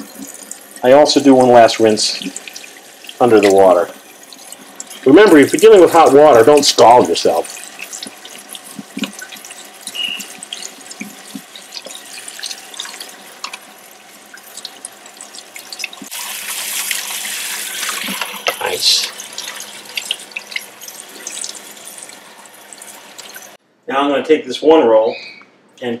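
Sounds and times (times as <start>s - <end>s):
faucet running water: 0.0s - 23.6s
water splashing and dripping: 0.0s - 23.6s.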